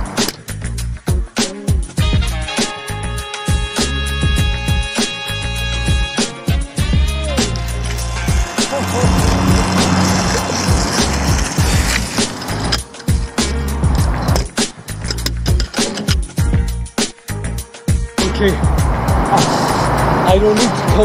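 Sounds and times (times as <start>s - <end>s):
music with steady beat: 0.0s - 11.9s, 12.7s - 21.0s
skate wheels rolling on concrete: 7.0s - 15.9s.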